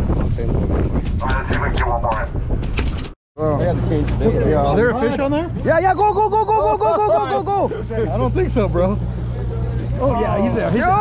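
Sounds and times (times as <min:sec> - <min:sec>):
wind on microphone: 0:00.0 - 0:03.2
boat engine rumble: 0:00.0 - 0:11.0
voices: 0:03.6 - 0:11.0.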